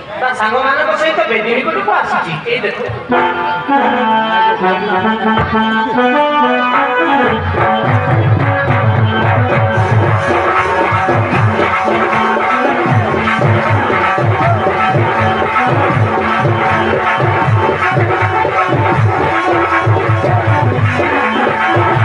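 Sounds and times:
keyboard-like melody: 0:01.7 - 0:22.0
fast drum beat: 0:07.8 - 0:22.0.

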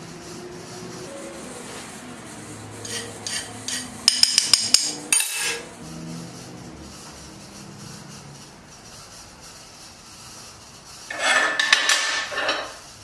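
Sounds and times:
ringing metal scrape: 0:02.8 - 0:05.7, 0:11.1 - 0:12.8.

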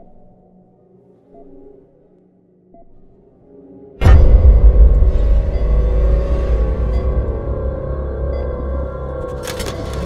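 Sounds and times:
low suspense drone: 0:04.0 - 0:10.0.

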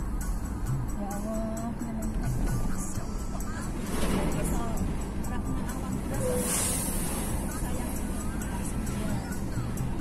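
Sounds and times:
car engine and road rumble: 0:00.0 - 0:10.0
passing bus whoosh: 0:01.7 - 0:10.0.

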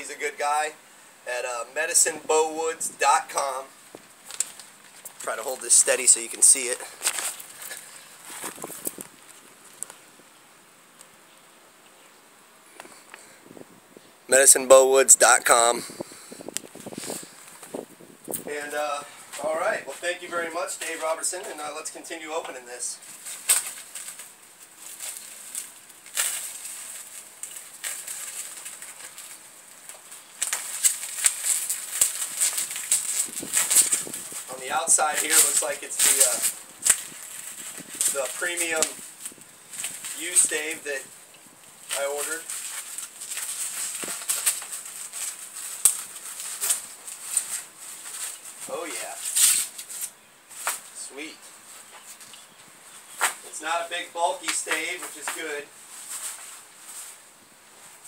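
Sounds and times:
plastic wrapping crinkling: 0:03.2 - 0:10.0, 0:23.0 - 0:52.5, 0:54.3 - 0:58.0.

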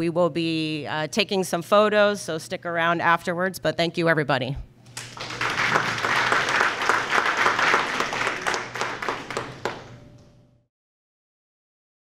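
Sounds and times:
audience applauding: 0:05.0 - 0:10.0.

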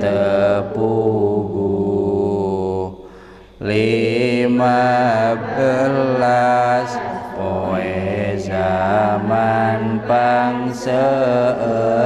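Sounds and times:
man chanting: 0:00.0 - 0:03.0, 0:03.6 - 0:12.0.

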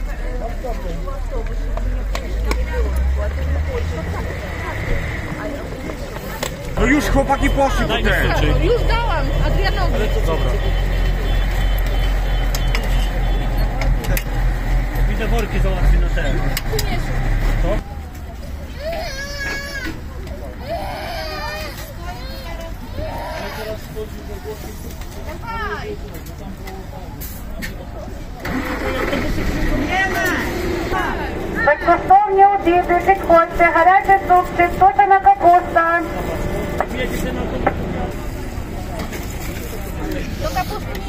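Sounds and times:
faint voices: 0:00.0 - 0:41.0
engine starting and running: 0:28.3 - 0:31.6.

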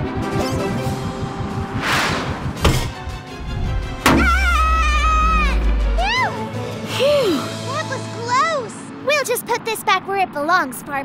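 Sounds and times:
cartoon background music: 0:00.0 - 0:02.0, 0:02.6 - 0:09.7
deep low hum: 0:03.4 - 0:07.1
sharp hits: 0:04.0 - 0:06.9
high wavering pitched sound: 0:04.3 - 0:09.1.

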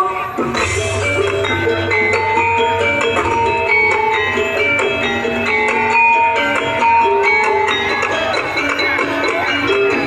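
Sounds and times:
drums: 0:00.0 - 0:10.0
ringing pitched melody notes: 0:00.0 - 0:10.0.

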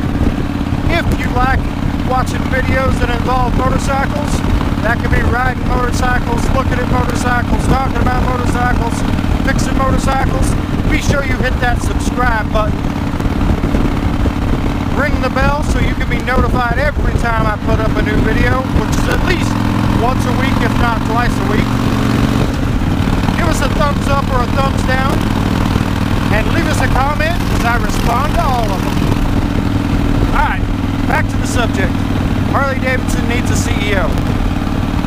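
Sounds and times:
motorcycle engine cruising: 0:00.0 - 0:35.0
rider's voice: 0:00.8 - 0:12.9, 0:14.9 - 0:21.8, 0:23.1 - 0:25.3, 0:26.2 - 0:29.2, 0:30.2 - 0:34.3.

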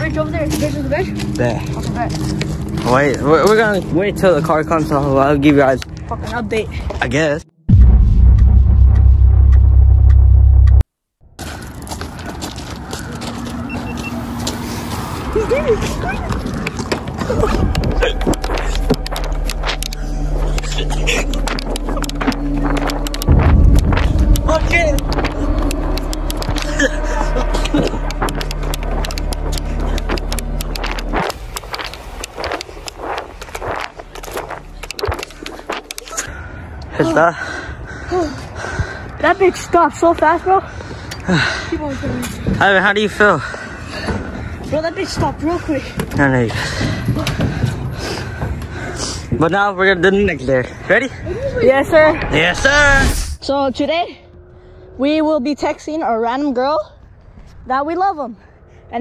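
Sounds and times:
car engine running: 0:07.7 - 0:10.8, 0:15.9 - 0:36.2
loud deep boom: 0:07.7 - 0:10.8, 0:17.2 - 0:35.9
low voices: 0:14.2 - 0:36.4.

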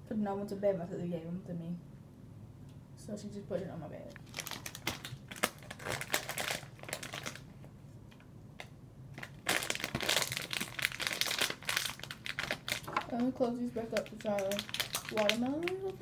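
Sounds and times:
plastic candy bag crinkling: 0:04.2 - 0:07.7, 0:08.6 - 0:16.0.

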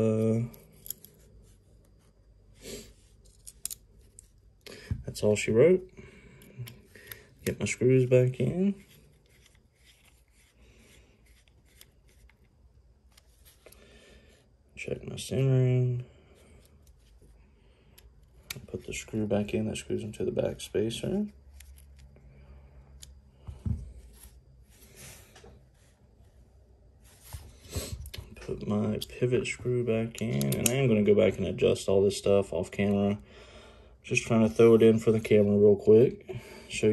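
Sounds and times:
faint rubbing and scraping: 0:07.6 - 0:14.5, 0:18.6 - 0:29.6
screwdriver clicking and rubbing: 0:11.2 - 0:12.5.

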